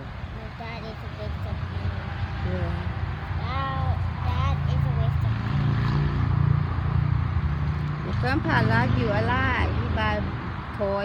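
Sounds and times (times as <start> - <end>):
soft talking: 0.0 - 5.6
passing vehicle engine rumble: 0.0 - 11.0.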